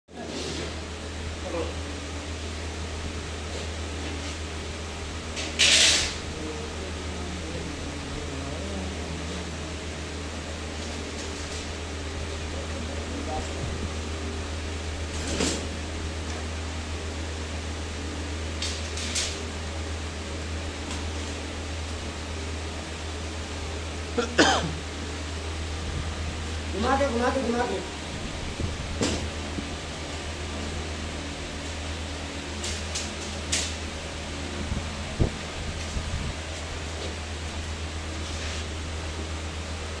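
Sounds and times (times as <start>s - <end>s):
steady low hum: 0.1s - 40.0s
metal grating scraping rattle: 5.3s - 6.2s.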